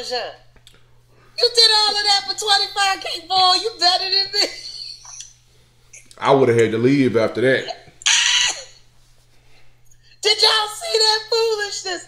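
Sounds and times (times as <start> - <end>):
woman laughing high-pitched: 4.2 - 5.3, 8.0 - 8.8.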